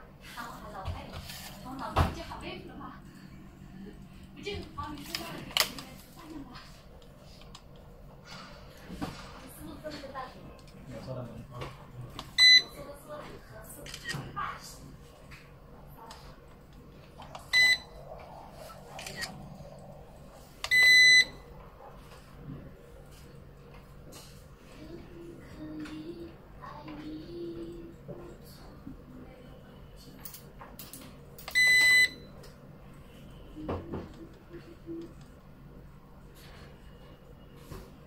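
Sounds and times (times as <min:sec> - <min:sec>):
remote controller beep: 0:12.4 - 0:12.7, 0:17.4 - 0:17.9, 0:20.7 - 0:21.3, 0:31.5 - 0:32.2.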